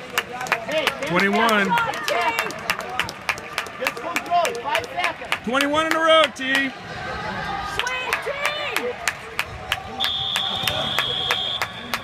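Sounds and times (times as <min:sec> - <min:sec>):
rhythmic clapping: 0:07.8 - 0:12.0.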